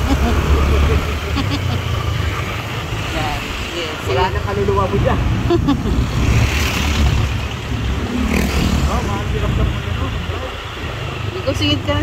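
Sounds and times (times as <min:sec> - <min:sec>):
scooter engine: 0:00.0 - 0:12.0
street traffic: 0:00.0 - 0:12.0.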